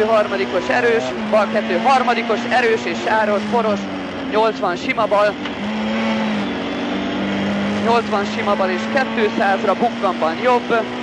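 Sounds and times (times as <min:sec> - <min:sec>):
car engine at high revs: 0:00.0 - 0:11.0.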